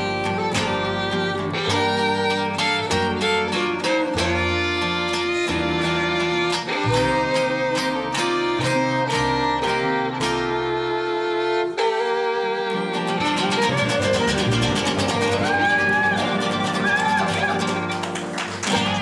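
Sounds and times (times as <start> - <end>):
upright bass line: 0.0 - 11.6, 12.8 - 19.0
bowed fiddle melody: 0.0 - 19.0
strummed rhythm guitars: 0.0 - 19.0.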